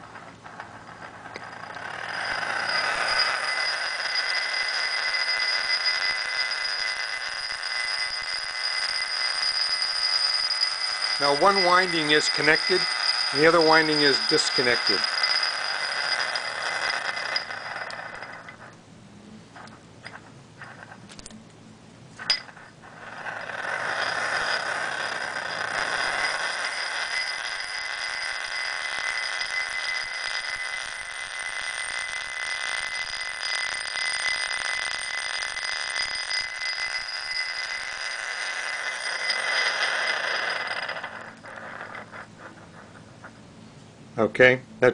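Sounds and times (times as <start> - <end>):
steel ball whirring in glass bowl: 0.0 - 18.8, 19.5 - 21.3, 22.1 - 43.4.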